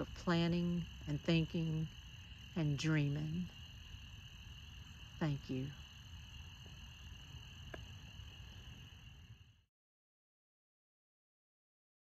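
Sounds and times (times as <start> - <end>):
distant frogs trilling: 0.0 - 9.6
low outdoor rumble: 0.0 - 9.6.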